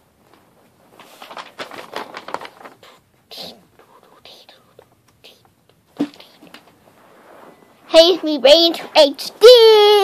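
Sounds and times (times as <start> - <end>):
child whispering: 2.8 - 6.6.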